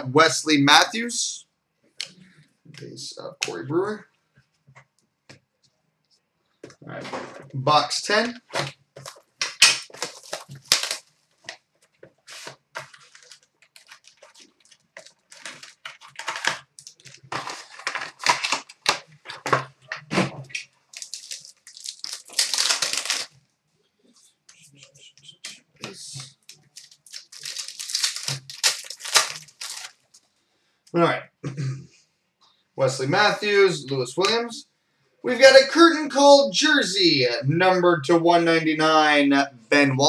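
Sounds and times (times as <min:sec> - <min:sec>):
foil wrapper crinkling and ripping: 0:09.0 - 0:11.6, 0:12.2 - 0:23.4, 0:25.8 - 0:30.2.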